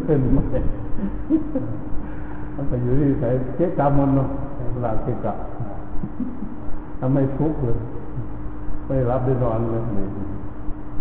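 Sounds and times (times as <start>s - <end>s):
elderly man preaching: 0.0s - 0.8s, 2.6s - 5.9s, 7.0s - 7.8s, 8.9s - 10.2s
steady low hum: 0.0s - 11.0s.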